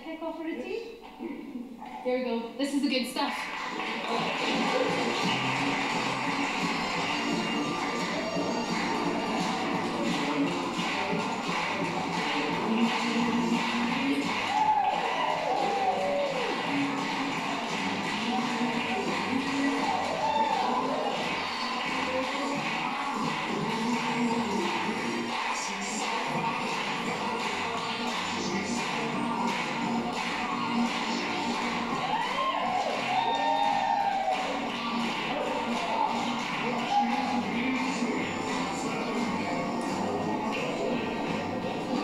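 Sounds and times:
upbeat dance music: 0.0 - 42.0.

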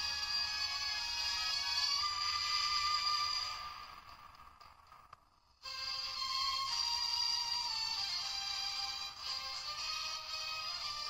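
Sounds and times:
thin music from small toy speaker: 0.0 - 3.9, 5.6 - 11.0.

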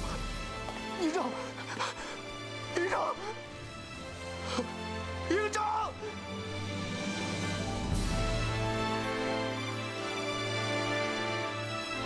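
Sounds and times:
background music with held notes: 0.0 - 12.0
man calling out in distress: 5.2 - 6.2.

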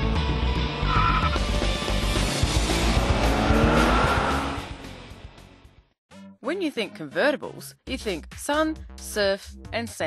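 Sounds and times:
car sound effects: 0.8 - 5.2
intro music: 1.0 - 5.6
rising sweep: 2.1 - 5.0.

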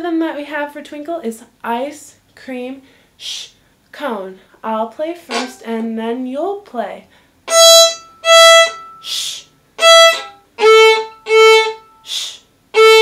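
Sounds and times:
violin bowed open strings: 5.3 - 5.6, 7.5 - 9.2, 9.8 - 12.0, 12.7 - 13.0
person whispering shh: 9.0 - 9.5, 12.0 - 12.5.

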